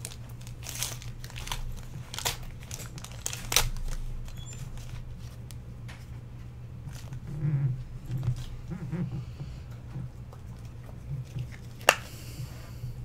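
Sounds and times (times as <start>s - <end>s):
wrapper rustling: 0.0s - 5.6s
steady low hum: 0.0s - 13.0s.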